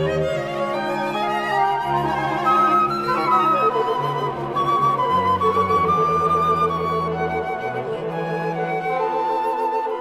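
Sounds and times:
chamber ensemble playing: 0.0 - 10.0.

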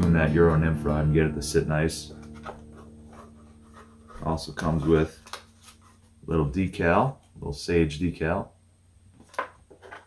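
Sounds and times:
faint steady hum: 0.0 - 9.8.

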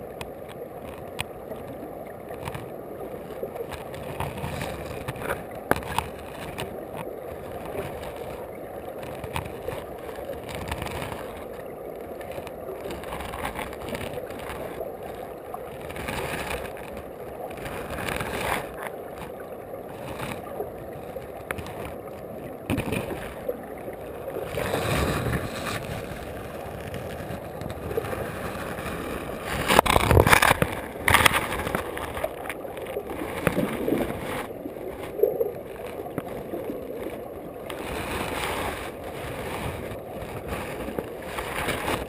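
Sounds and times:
muffled underwater river rushing: 0.0 - 42.0.

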